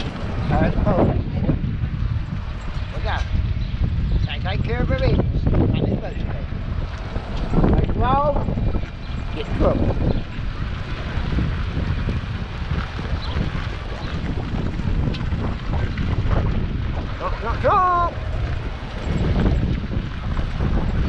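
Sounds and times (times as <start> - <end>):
wind rumbling on microphone: 0.0 - 21.0.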